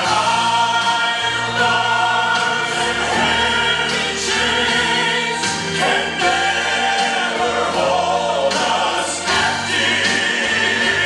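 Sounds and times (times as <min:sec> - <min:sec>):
gospel choir singing: 0:00.0 - 0:11.0
instrumental accompaniment: 0:00.0 - 0:11.0.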